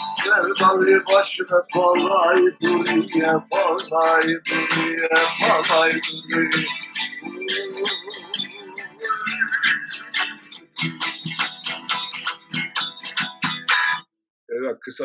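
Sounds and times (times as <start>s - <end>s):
man singing a chant: 0.0s - 6.7s
acoustic guitar strumming: 0.0s - 14.0s.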